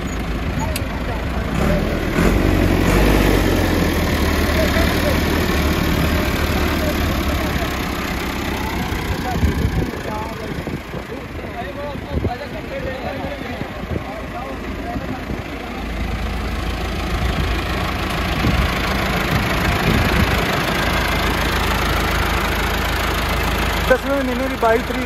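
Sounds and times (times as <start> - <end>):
tractor diesel engine running: 0.0 - 25.0
faint voices: 4.0 - 22.6.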